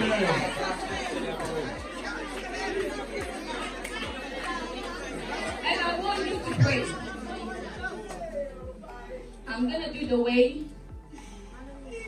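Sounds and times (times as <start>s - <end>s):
congregation praying aloud: 0.0s - 9.5s.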